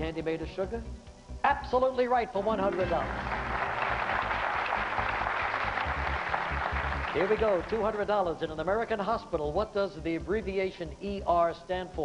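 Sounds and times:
game show music: 0.0 - 11.4
audience applauding: 2.6 - 8.0.

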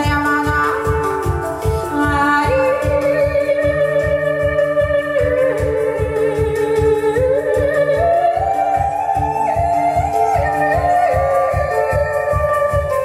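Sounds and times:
handpan playing: 0.0 - 13.0
woman singing wordless notes: 1.9 - 13.0.

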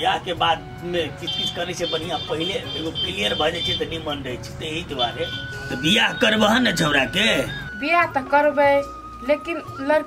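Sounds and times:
man talking: 0.0 - 7.6
background music with held note: 0.0 - 10.0
woman talking: 7.8 - 10.0.

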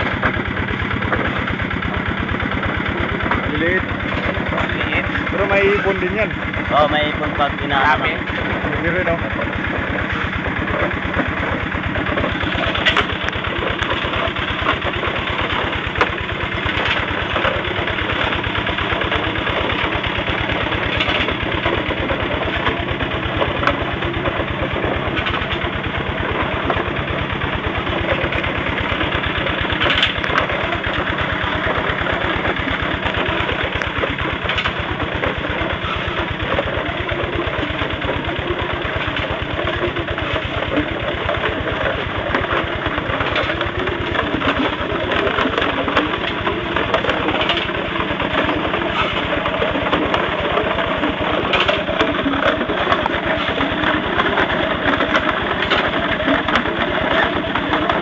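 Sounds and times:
drum mills grinding ore: 0.0 - 58.0
engine running steadily: 0.0 - 58.0.

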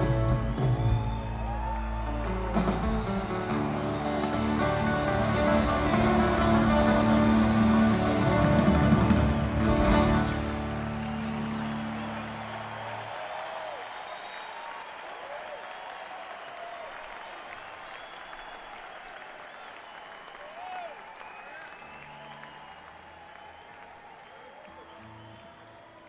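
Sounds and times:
audience applauding and cheering: 0.0 - 26.0.

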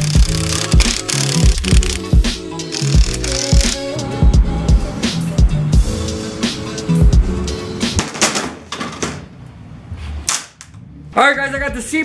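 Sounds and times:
background music: 0.0 - 8.2
hand tools clicking on metal: 2.8 - 3.8.

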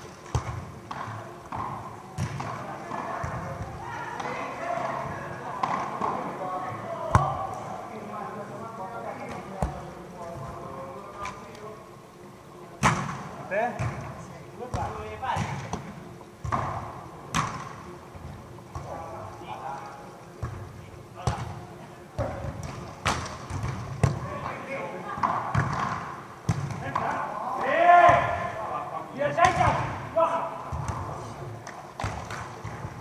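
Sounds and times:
background chatter of voices: 0.0 - 33.0
volleyball being struck by hand: 0.2 - 4.4, 7.1 - 7.6, 14.7 - 17.8, 22.2 - 24.2, 30.7 - 33.0
volleyball being struck: 7.1 - 7.5, 14.7 - 17.8.

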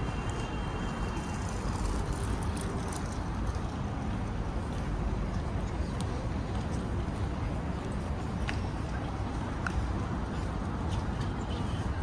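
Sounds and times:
city background low rumble: 0.0 - 12.0.

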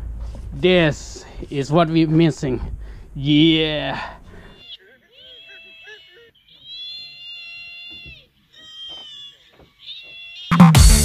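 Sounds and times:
high-pitched wailing cries: 3.9 - 10.8
electronic dance music: 10.5 - 11.0.

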